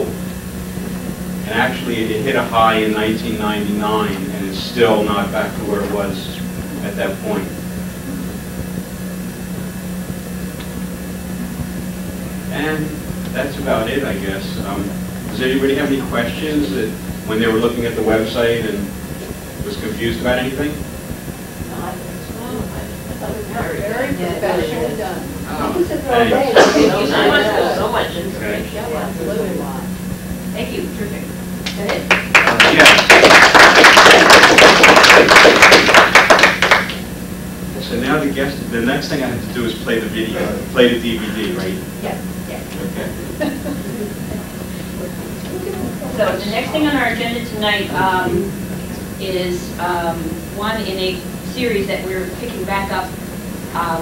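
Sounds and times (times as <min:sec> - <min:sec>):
low hum with rumble: 0:00.0 - 0:54.0
small audience applauding: 0:31.6 - 0:37.1.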